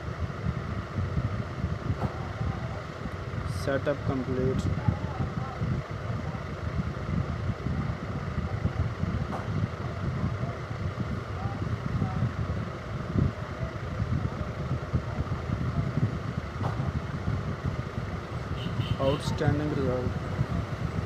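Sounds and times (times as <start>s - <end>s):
low rumble: 0.0s - 19.4s.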